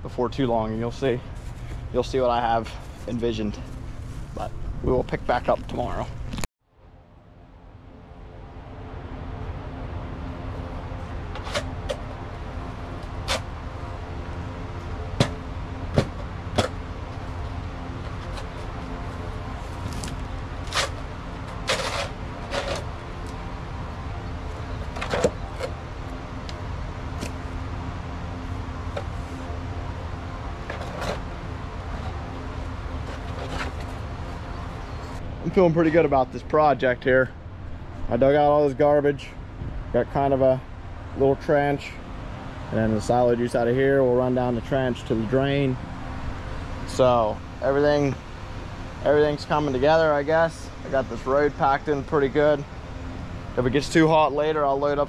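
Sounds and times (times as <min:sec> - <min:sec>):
steady drone: 0:00.0 - 0:55.0
shovel knocking and scraping: 0:20.6 - 0:22.9.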